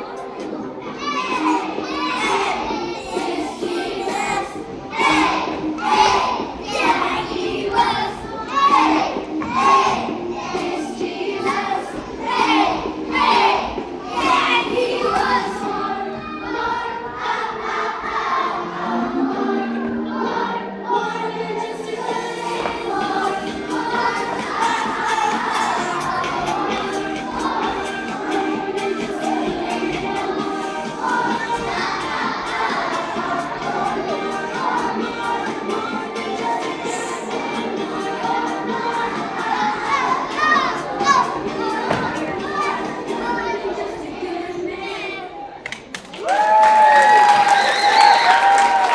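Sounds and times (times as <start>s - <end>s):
children chattering and calling out: 0.0s - 9.1s, 38.4s - 45.6s
young children singing: 0.0s - 45.6s
music: 0.0s - 48.9s
thump: 41.8s - 42.2s.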